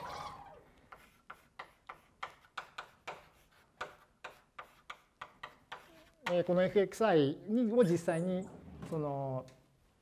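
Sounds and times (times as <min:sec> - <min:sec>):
chalk tapping on blackboard: 0:00.8 - 0:06.8.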